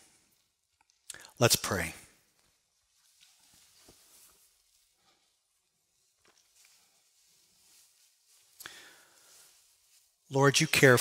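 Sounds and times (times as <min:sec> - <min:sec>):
clothing rustling: 0:02.3 - 0:10.3.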